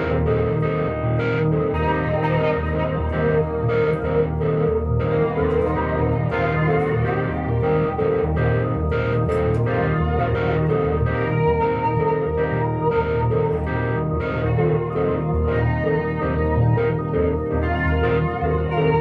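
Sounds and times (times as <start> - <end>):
electric guitar with effects: 0.0 - 19.0
electric piano: 0.0 - 19.0.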